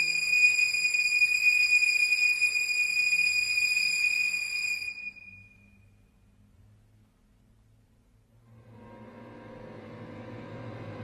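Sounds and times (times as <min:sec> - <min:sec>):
faint low hum: 0:05.2 - 0:11.0.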